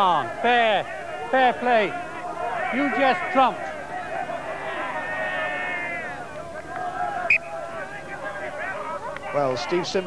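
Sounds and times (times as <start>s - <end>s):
men calling out: 0.0s - 10.0s.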